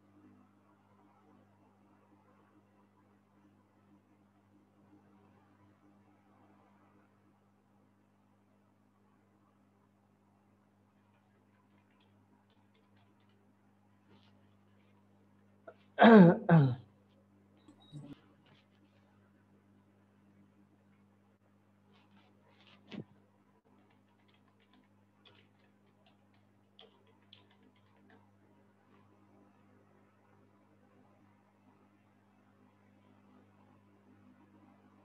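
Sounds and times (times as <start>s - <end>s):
low electrical hum: 0.0s - 35.0s.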